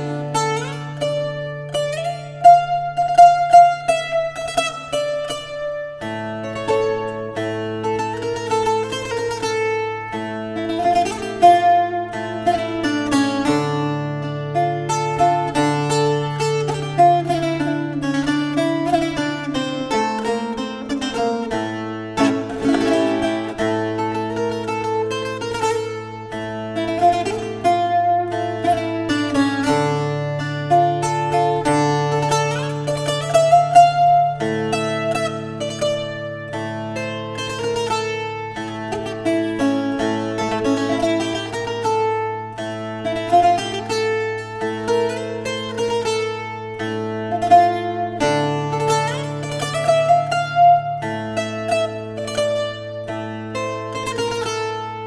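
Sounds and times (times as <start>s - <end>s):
fingerpicked steel-strung guitar: 0.0s - 55.0s.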